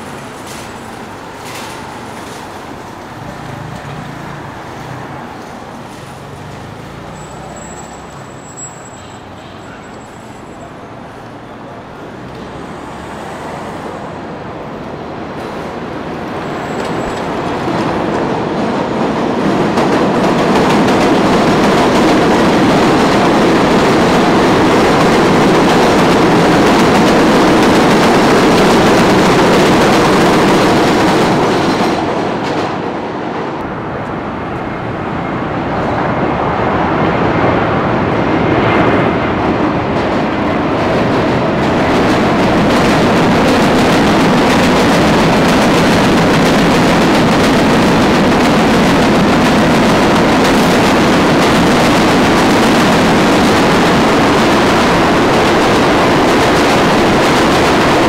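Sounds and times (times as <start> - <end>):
train rumbling on elevated tracks: 0.0 - 58.0.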